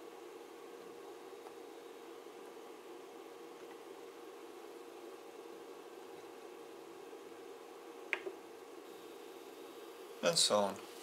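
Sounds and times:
electronics hum: 0.0s - 11.0s.

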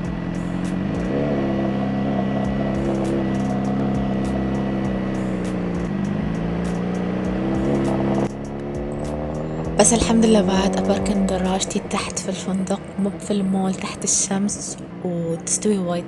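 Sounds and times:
motorcycle engine accelerating: 0.0s - 16.0s.

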